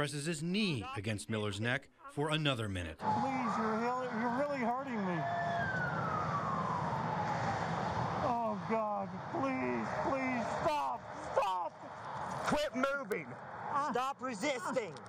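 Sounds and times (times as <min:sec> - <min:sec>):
men's voices: 0:00.0 - 0:05.3, 0:08.2 - 0:15.0
siren wailing: 0:03.0 - 0:11.3
road noise: 0:03.0 - 0:15.0.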